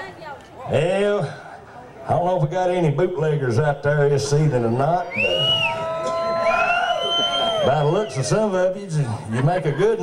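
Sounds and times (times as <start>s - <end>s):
audience whooping and whistling: 5.1s - 8.3s.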